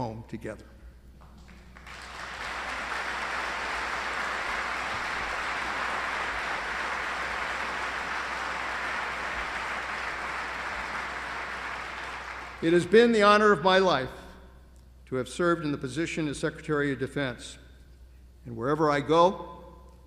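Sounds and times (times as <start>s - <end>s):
audience applauding: 1.4s - 13.0s.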